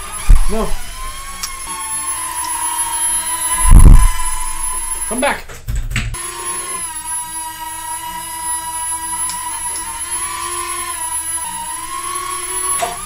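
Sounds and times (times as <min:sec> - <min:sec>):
toy drone motors whining: 0:00.0 - 0:05.4, 0:06.2 - 0:13.0.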